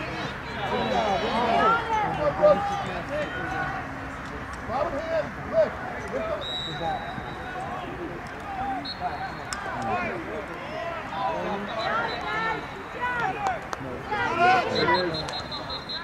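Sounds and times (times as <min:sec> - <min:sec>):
people shouting and calling: 0:00.0 - 0:16.0.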